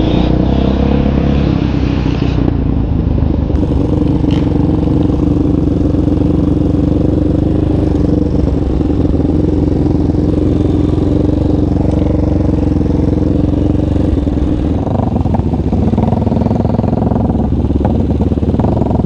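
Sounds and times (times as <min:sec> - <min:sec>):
quad bike engine running: 0:02.3 - 0:19.0.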